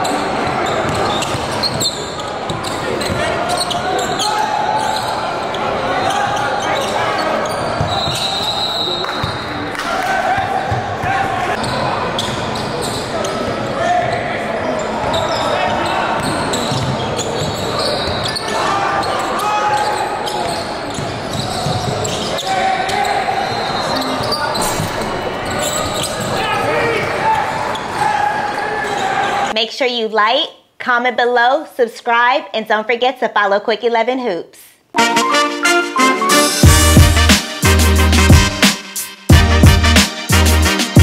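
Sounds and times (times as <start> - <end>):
echoing chatter of people: 0.0 - 29.6.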